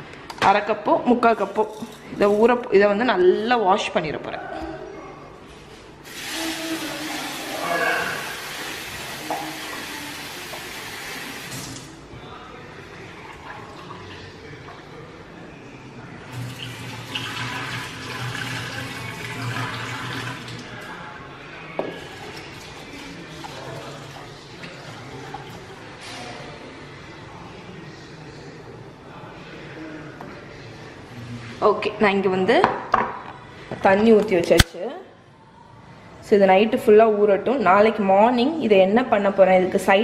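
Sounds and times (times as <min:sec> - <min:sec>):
tap water running into bowl: 0:06.1 - 0:11.8, 0:16.3 - 0:20.7.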